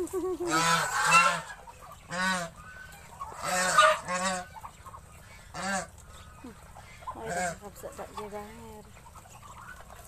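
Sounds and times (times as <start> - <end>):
geese honking: 0.0 - 10.0.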